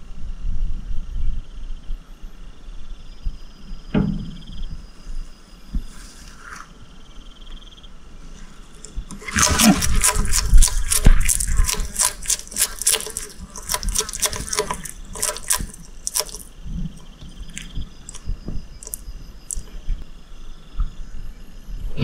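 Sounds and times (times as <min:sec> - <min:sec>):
lizard crunching beetle: 0:08.4 - 0:19.7.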